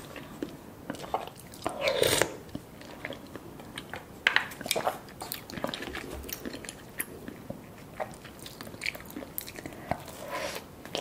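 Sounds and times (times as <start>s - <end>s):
person chewing food: 0.0s - 11.0s.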